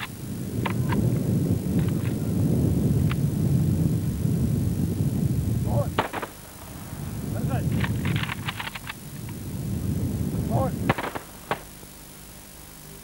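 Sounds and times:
rifle volleys: 0:06.0 - 0:06.4, 0:10.9 - 0:11.7.

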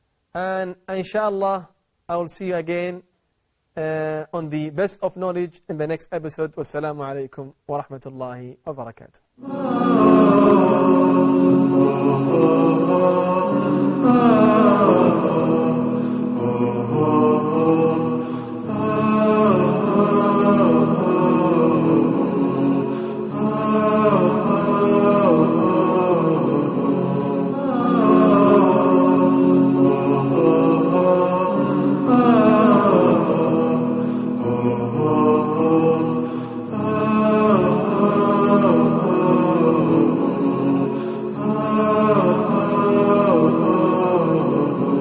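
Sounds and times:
melodic vocal chanting: 0:03.8 - 0:45.0.

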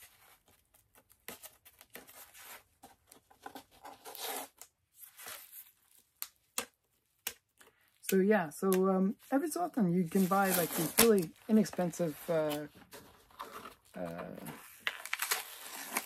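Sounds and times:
packaging tearing and rustling: 0:10.1 - 0:11.4, 0:12.4 - 0:16.0.

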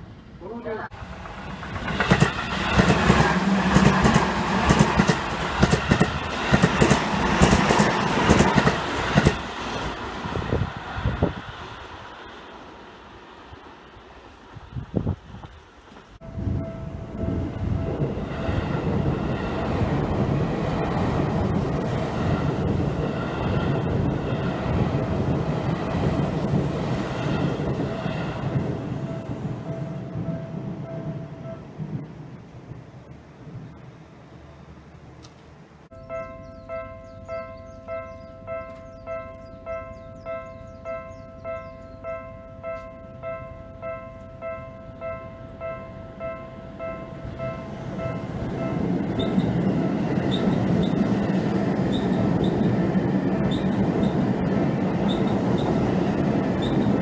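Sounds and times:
passing train running: 0:00.0 - 0:57.0
train wheels clattering: 0:01.0 - 0:10.0, 0:47.4 - 0:57.0.

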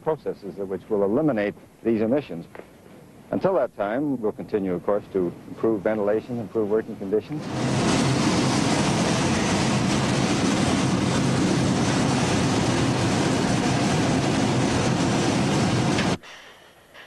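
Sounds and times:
low machinery hum: 0:00.0 - 0:16.2
molten material pouring rush: 0:07.4 - 0:16.2.

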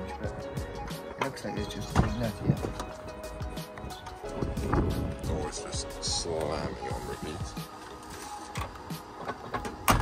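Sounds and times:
loud door clunk: 0:09.2 - 0:10.0.

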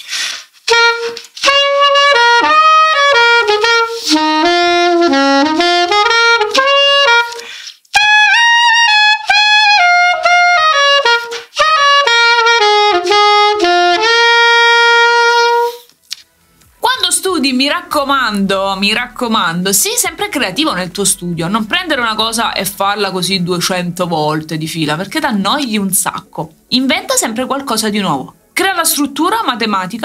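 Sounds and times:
soprano saxophone playing: 0:00.6 - 0:23.2.

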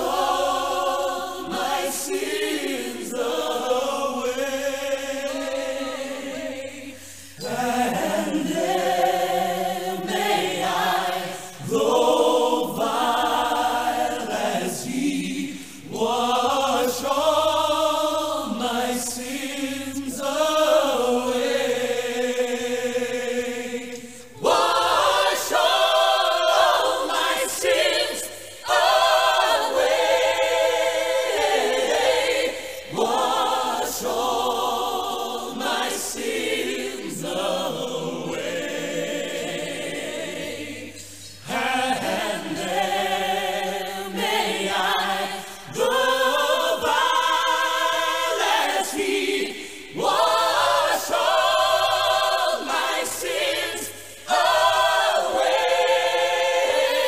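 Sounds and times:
choir singing: 0:00.0 - 0:57.0.

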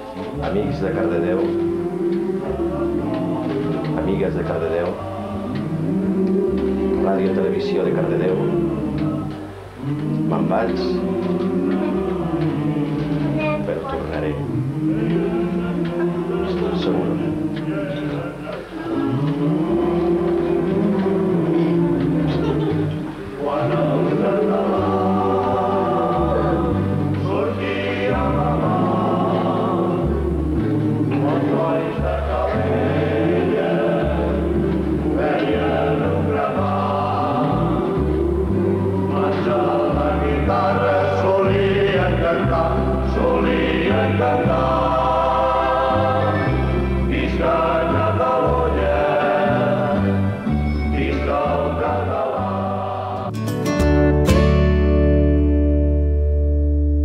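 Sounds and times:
group of voices singing: 0:00.0 - 0:53.6
sustained chords: 0:00.0 - 0:57.0.

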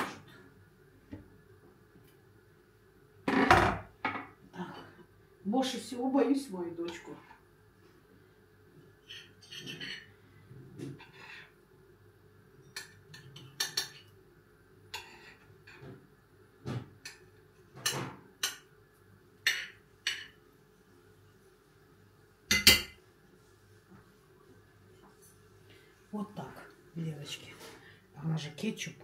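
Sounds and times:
utensils clinking on ceramic plate: 0:09.1 - 0:10.1.

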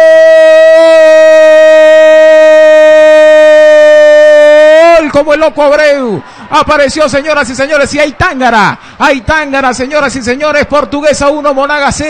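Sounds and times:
man shouting goal: 0:00.0 - 0:09.3.

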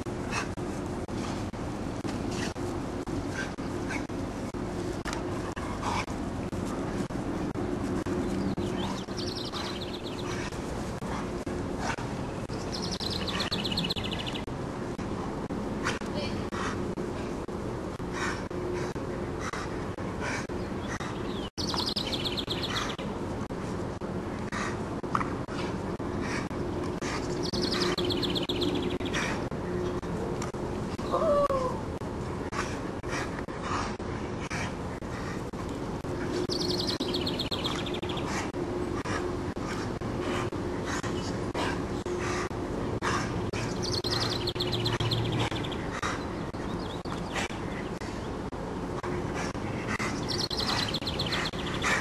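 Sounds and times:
faint rhythmic huffing: 0:00.0 - 0:31.0, 0:31.9 - 0:52.0
steady low hum: 0:00.0 - 0:52.0.

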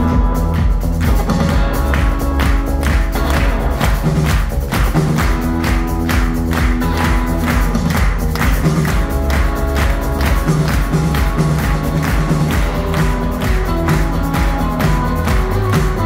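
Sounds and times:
live pop band music: 0:00.0 - 0:16.0.

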